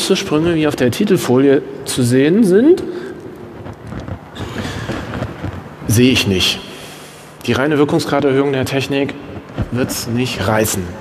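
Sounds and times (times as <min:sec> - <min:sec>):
low rumbling room noise: 0:00.0 - 0:11.0.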